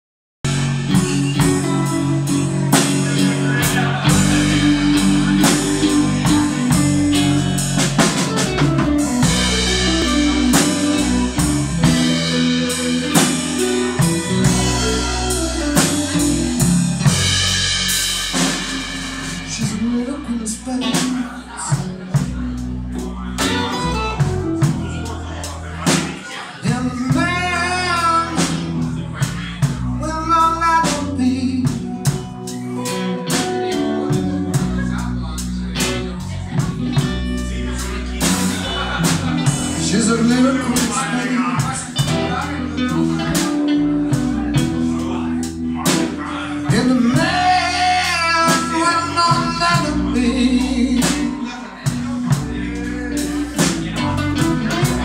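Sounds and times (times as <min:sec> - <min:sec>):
blues band playing: 0:00.4 - 0:55.0.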